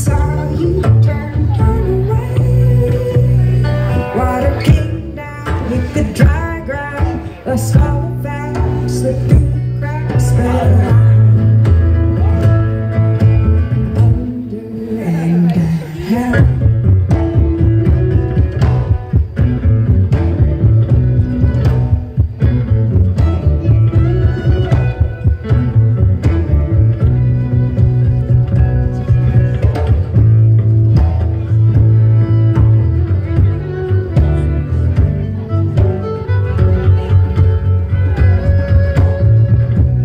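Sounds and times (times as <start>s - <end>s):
fiddle: 0.0s - 40.0s
guitar: 0.0s - 40.0s
upright bass line: 0.0s - 40.0s.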